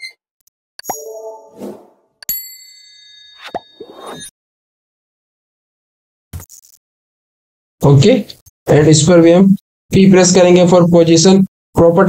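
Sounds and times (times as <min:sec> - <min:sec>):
bell chime ringing: 0:00.8 - 0:01.6, 0:02.2 - 0:04.3.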